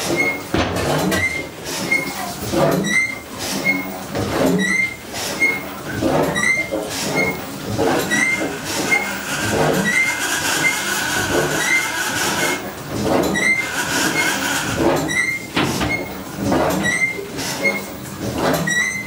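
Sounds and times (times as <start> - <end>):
steam engine clattering: 0.0 - 19.0.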